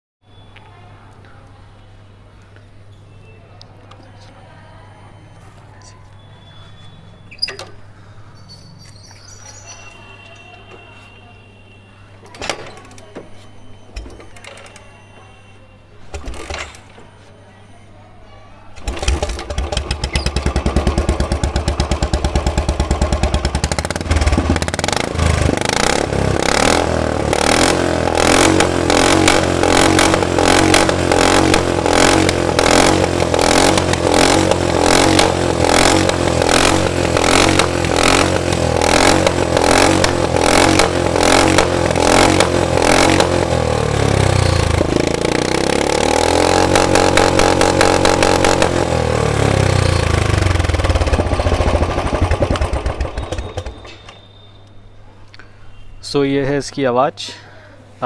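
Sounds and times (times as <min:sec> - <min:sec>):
loud motorcycle engine revving: 0:18.9 - 0:53.9.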